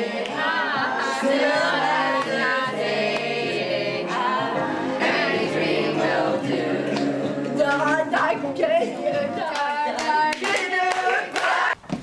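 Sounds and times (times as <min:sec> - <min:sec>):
group singing a show tune: 0:00.0 - 0:11.8
hand claps: 0:06.9 - 0:08.3, 0:09.4 - 0:12.0.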